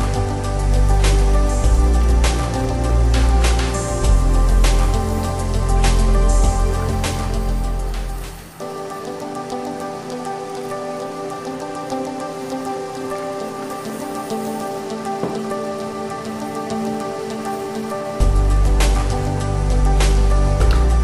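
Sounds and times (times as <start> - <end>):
background music: 0.0 - 21.0.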